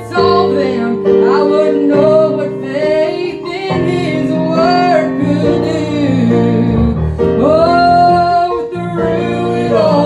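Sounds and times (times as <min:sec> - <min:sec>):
keyboard accompaniment: 0:00.0 - 0:10.0
voices singing in harmony: 0:00.0 - 0:10.0
woman singing gospel: 0:00.0 - 0:10.0.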